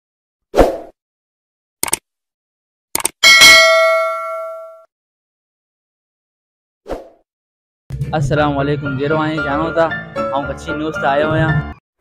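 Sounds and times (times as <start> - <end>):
bell ding: 3.2 - 4.9.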